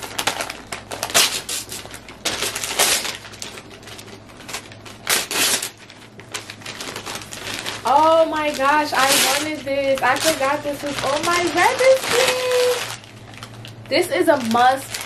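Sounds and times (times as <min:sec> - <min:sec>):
wrapping paper tearing and crinkling: 0:00.0 - 0:15.0.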